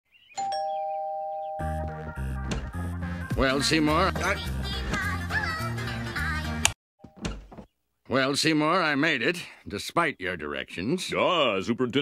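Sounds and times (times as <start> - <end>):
two-tone doorbell chime: 0.4 - 2.0.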